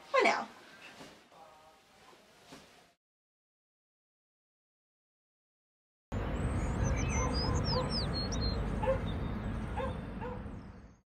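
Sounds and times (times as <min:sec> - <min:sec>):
low steady background rumble: 0:06.2 - 0:11.0
small birds chirping: 0:06.2 - 0:11.0
distant dog barking: 0:07.0 - 0:10.6.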